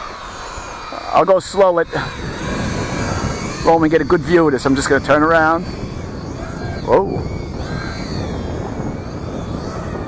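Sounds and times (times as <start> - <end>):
electric toy truck motor whine: 0.0 - 10.0
wind on microphone: 0.0 - 10.0.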